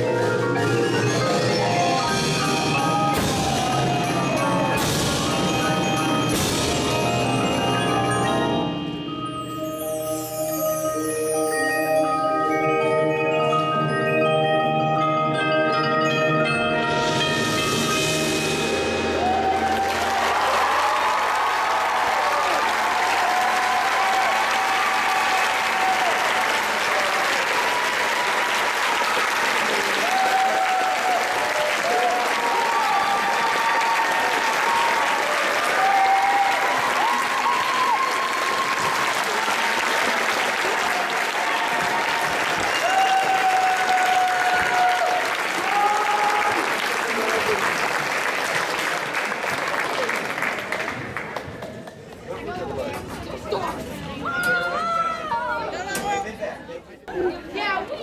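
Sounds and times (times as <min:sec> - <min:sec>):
audience applause: 0:19.2 - 0:52.6
shouts and whistles: 0:41.6 - 0:46.6.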